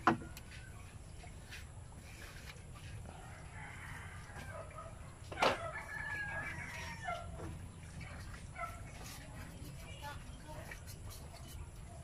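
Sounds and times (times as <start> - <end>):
rooster crowing: 3.2 - 4.7, 5.4 - 7.3.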